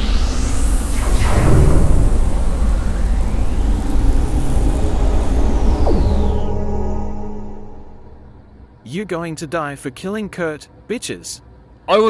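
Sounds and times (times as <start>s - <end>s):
downward zap: 0.0s - 8.6s
whooshing pitch sweeps: 0.0s - 8.8s
dense low rumble: 0.0s - 8.9s.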